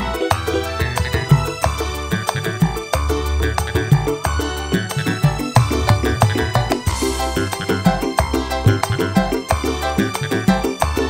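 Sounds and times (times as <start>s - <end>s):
live band music: 0.0s - 11.0s.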